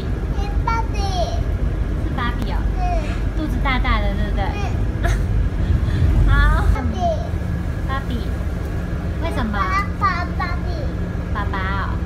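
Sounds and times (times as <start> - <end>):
bus engine and road rumble: 0.0 - 12.0
toddler babbling: 2.8 - 3.2.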